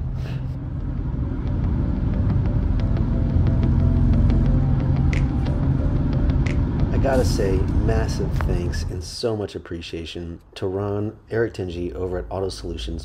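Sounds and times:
car engine and road rumble: 0:00.0 - 0:09.3.

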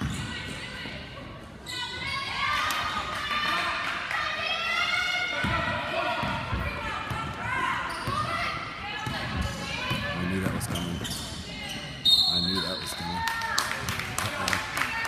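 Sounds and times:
referee's whistle: 0:12.0 - 0:13.1.

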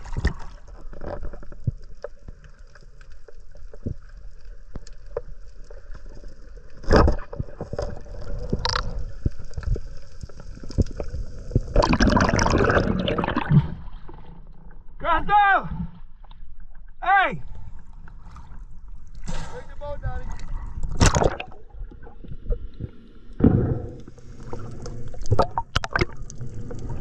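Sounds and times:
rush of water and bubbles: 0:00.0 - 0:14.9, 0:17.5 - 0:27.0
underwater clicks: 0:06.8 - 0:09.9, 0:20.8 - 0:26.9.

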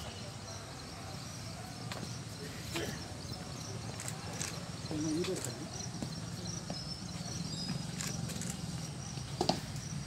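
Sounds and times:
faint voices: 0:00.0 - 0:08.8.

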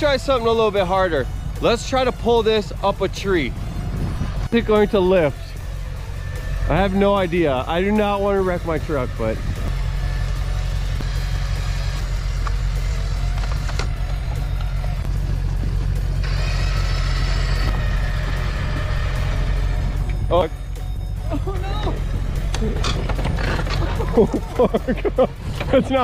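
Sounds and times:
diesel engine running: 0:00.0 - 0:26.0
electric winch under load: 0:00.0 - 0:26.0.

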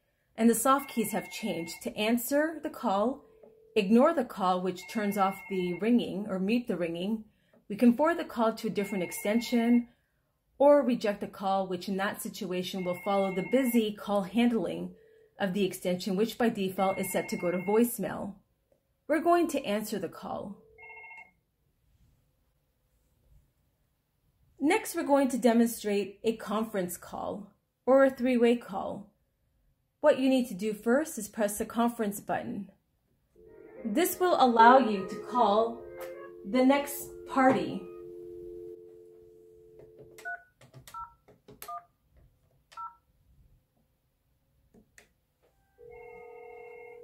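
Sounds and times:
phone ringtone chime: 0:00.8 - 0:01.8, 0:04.8 - 0:05.8, 0:08.8 - 0:09.5, 0:12.8 - 0:13.8, 0:16.9 - 0:17.8, 0:20.7 - 0:21.3, 0:33.4 - 0:40.4, 0:45.7 - 0:47.0.

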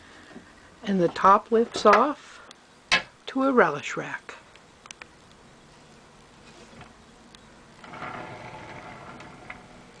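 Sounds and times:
rustling: 0:04.9 - 0:10.0.

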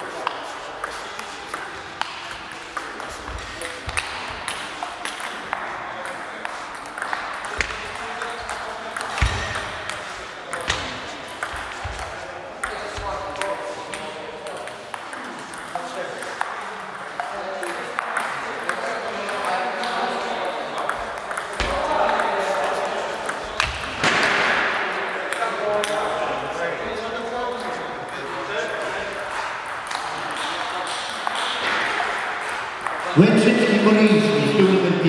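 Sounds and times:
people talking: 0:00.0 - 0:35.0
table tennis balls ticking: 0:00.1 - 0:23.9.

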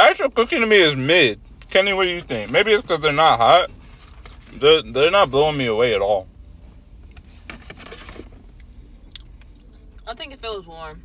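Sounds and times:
low hum inside a car: 0:00.0 - 0:11.0
person eating a cookie: 0:09.0 - 0:10.0.

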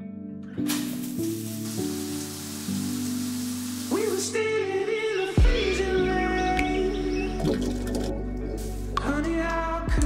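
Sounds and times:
background music with sustained chords: 0:00.0 - 0:10.0
water spray hissing: 0:00.6 - 0:05.4.

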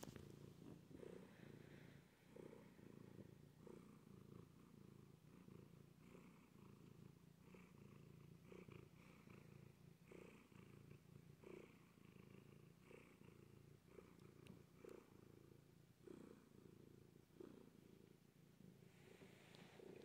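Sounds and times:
cat purring: 0:00.0 - 0:20.0.

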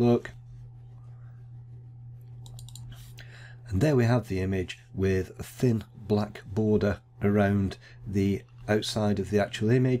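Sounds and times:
low electrical hum: 0:00.0 - 0:10.0
computer mouse clicking: 0:02.4 - 0:03.0.

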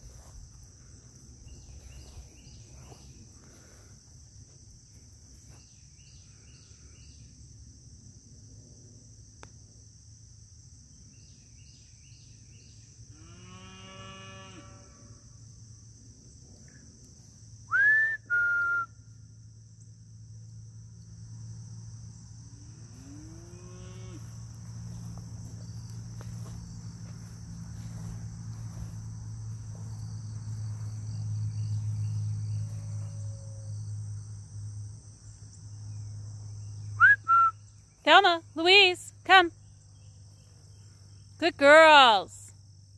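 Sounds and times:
crickets droning: 0:00.0 - 0:42.9
sharp human whistle: 0:17.7 - 0:19.0, 0:37.0 - 0:37.6.

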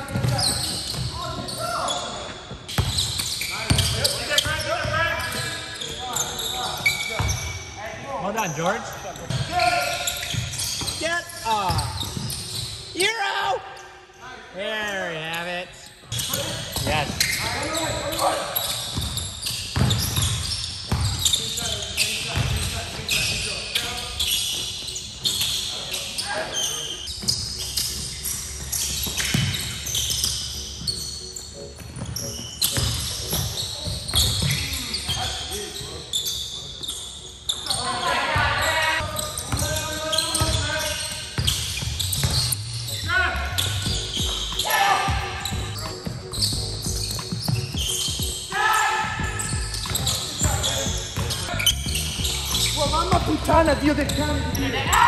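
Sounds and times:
basketball bouncing on wooden floor: 0:18.9 - 0:21.2.

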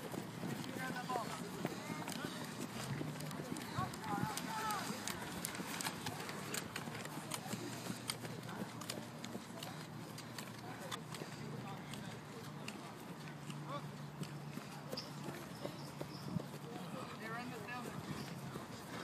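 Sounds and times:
running footsteps on grass: 0:00.0 - 0:19.0
people shouting: 0:03.8 - 0:05.1.

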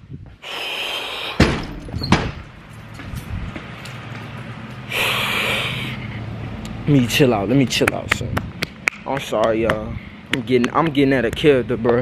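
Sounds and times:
door banging: 0:01.4 - 0:02.6.

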